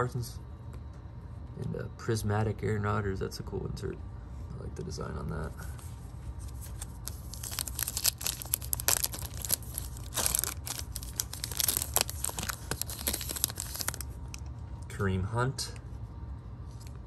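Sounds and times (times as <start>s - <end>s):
foil wrapper tearing and crinkling: 6.6s - 14.4s.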